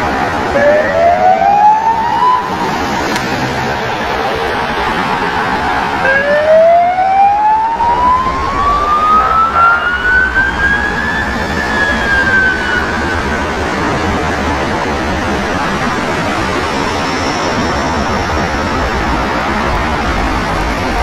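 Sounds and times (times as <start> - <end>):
police siren: 0.0 - 21.0
traffic noise: 0.0 - 21.0.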